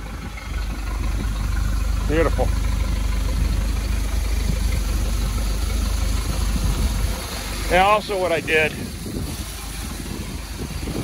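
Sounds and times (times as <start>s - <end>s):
boat engine idling: 0.0s - 11.0s.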